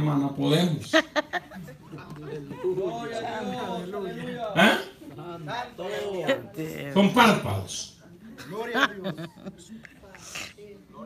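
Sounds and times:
man speaking into microphone: 0:02.5 - 0:09.0.

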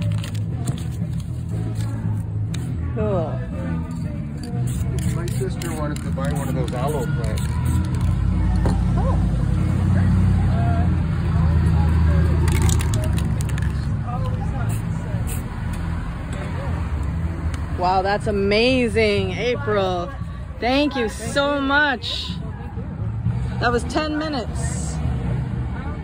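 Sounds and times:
spray paint cans hissing: 0:00.0 - 0:02.8, 0:03.9 - 0:08.6, 0:12.3 - 0:15.9.

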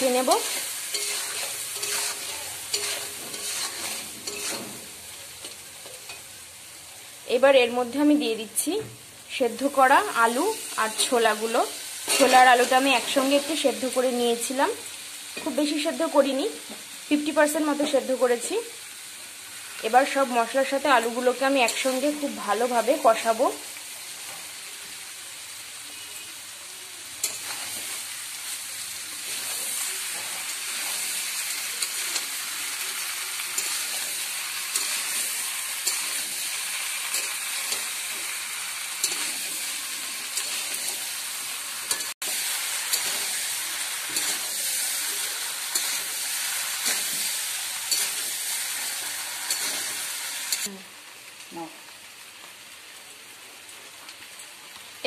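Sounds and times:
spatula scraping pan: 0:00.0 - 0:06.3, 0:12.0 - 0:13.3, 0:41.8 - 0:50.7
potatoes sizzling in hot oil: 0:00.0 - 0:55.0.

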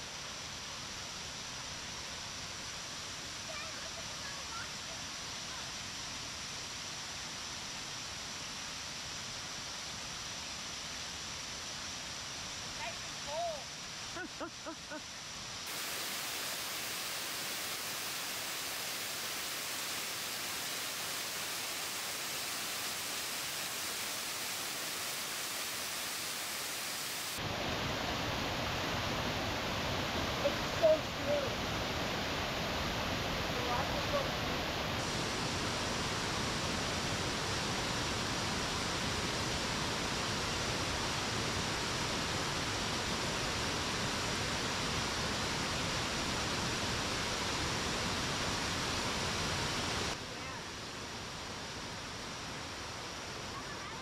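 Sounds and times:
waterfall rushing over rocks: 0:00.0 - 0:14.7, 0:15.3 - 0:54.0.

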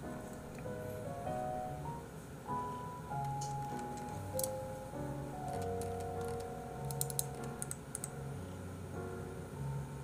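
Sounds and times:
soft background music: 0:00.0 - 0:10.0
computer keyboard keys clicking: 0:03.2 - 0:04.6, 0:05.4 - 0:08.2.

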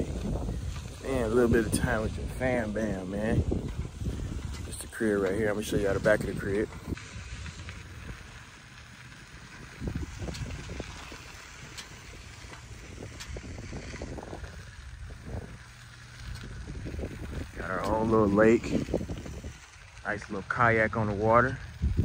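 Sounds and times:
small vehicle rumbling on pavement: 0:00.0 - 0:22.0
wind noise on microphone: 0:00.0 - 0:22.0.

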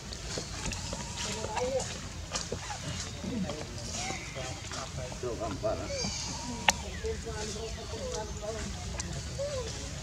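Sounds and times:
gliding vocal calls: 0:05.6 - 0:08.0.

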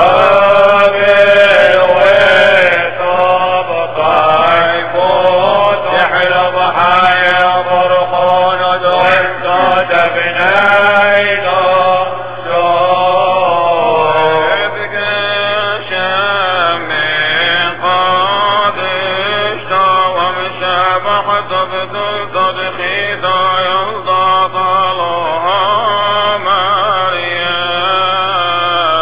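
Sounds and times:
man chanting: 0:00.0 - 0:29.0.

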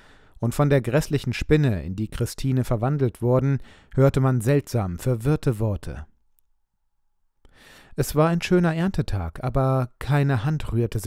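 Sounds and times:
person breathing in softly: 0:00.0 - 0:00.4, 0:03.6 - 0:04.0, 0:07.4 - 0:08.0.

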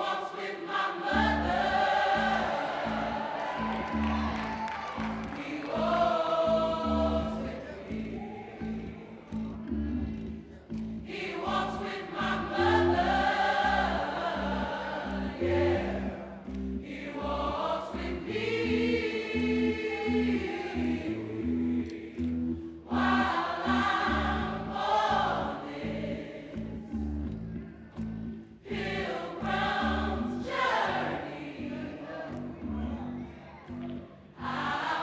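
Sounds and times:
gospel choir singing: 0:00.0 - 0:35.0.

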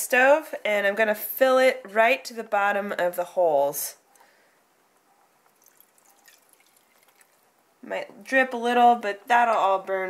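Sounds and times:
liquid trickling into metal can: 0:05.6 - 0:07.5.

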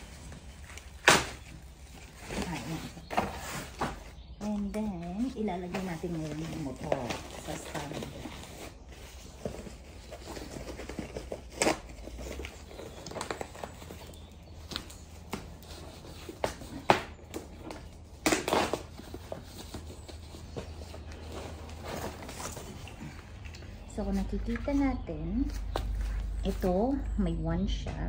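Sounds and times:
plastic bag rustling: 0:00.0 - 0:26.9.

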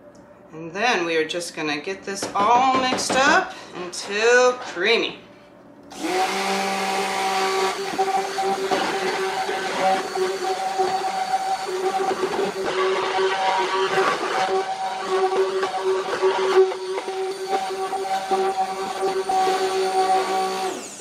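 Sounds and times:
stick blender motor whine: 0:05.9 - 0:21.0
liquid churning: 0:06.4 - 0:20.3.

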